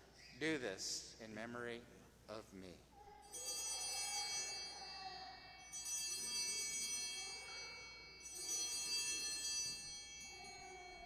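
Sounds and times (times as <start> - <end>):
small hand bells ringing: 3.0 - 11.0.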